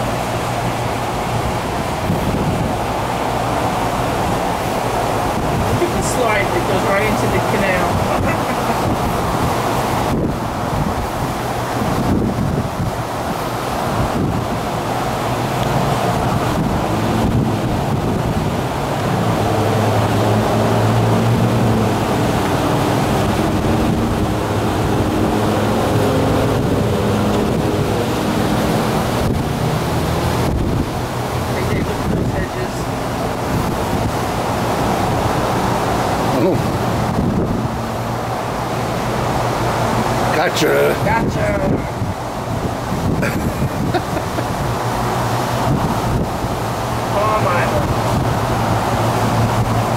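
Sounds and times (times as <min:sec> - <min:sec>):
boat outboard motors droning: 0:00.0 - 0:49.9
water noise: 0:00.0 - 0:49.9
wind on microphone: 0:00.0 - 0:49.9.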